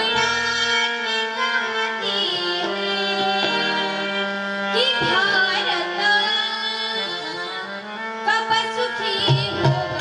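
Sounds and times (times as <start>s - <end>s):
harmonium playing held chords: 0.0s - 10.0s.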